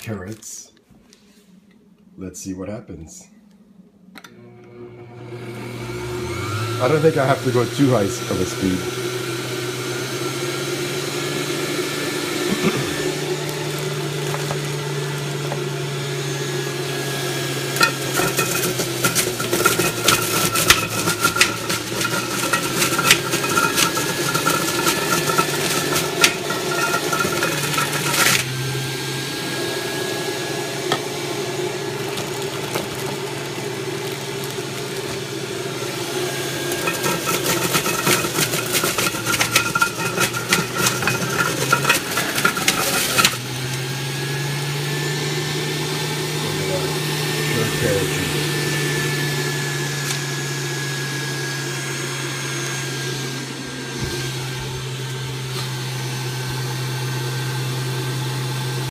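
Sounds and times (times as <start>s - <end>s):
juicer motor humming: 4.1s - 58.9s
carrots cracking and rattling: 36.7s - 43.5s.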